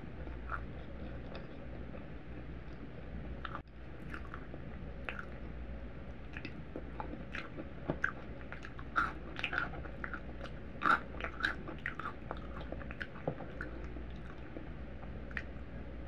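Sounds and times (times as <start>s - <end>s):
person chewing food: 0.0s - 15.7s.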